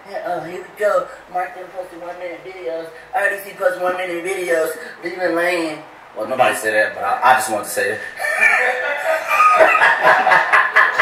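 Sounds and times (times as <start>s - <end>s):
loud human laughter: 8.2s - 11.0s.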